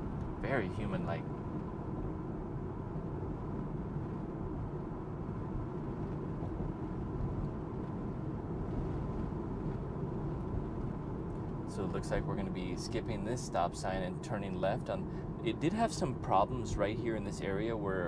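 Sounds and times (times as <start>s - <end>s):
road and tyre rumble in car: 0.0s - 18.0s.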